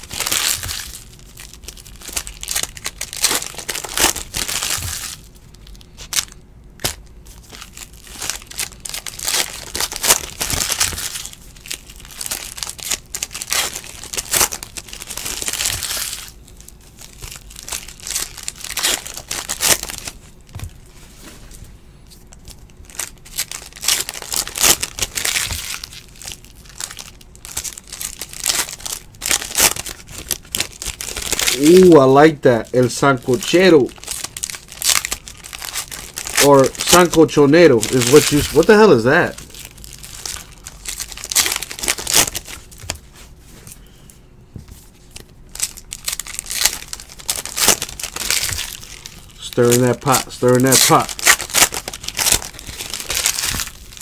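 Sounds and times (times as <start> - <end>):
foil wrappers crinkling and tearing: 0.0 - 20.8, 22.2 - 43.3, 45.0 - 54.0.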